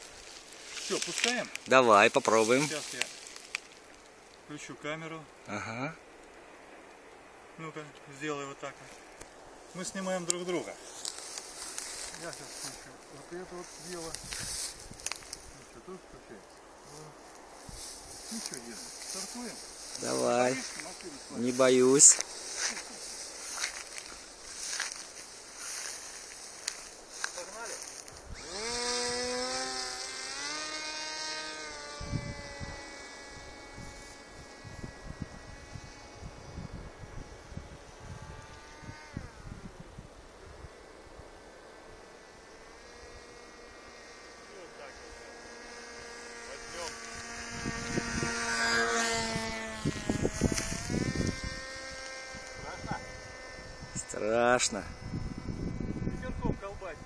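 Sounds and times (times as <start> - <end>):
model plane motor buzzing: 0.0 - 3.9, 9.8 - 57.0.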